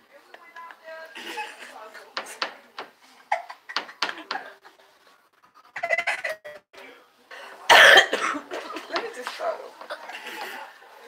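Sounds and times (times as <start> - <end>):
woman coughing: 3.3 - 3.6, 7.7 - 8.9.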